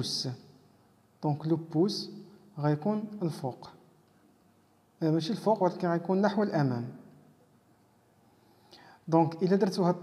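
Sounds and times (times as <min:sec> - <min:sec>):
faint breath: 0:08.2 - 0:09.1.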